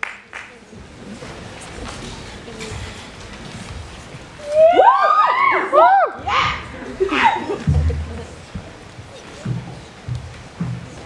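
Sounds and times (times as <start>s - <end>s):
murmur of theatre audience: 0.0s - 11.0s
crowd whooping: 4.4s - 7.3s.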